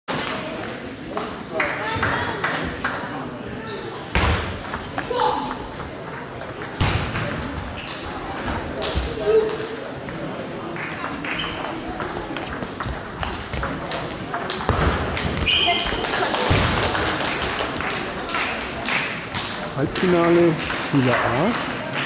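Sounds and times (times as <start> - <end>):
murmur of voices echoing: 0.1 - 22.0.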